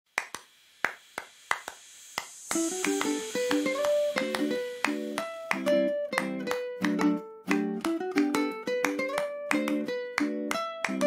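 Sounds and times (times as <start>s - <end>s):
sharp percussive snaps: 0.1s - 11.0s.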